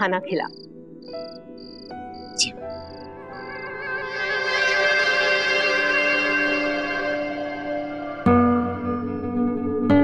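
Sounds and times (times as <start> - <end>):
crickets chirping: 0.0 - 9.4
soft background music: 0.0 - 10.0
sharp high sound: 2.4 - 2.8.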